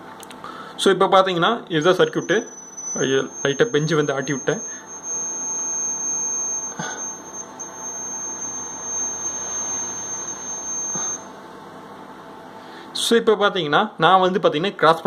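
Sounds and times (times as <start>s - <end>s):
high-pitched buzzer tone: 2.0s - 11.4s.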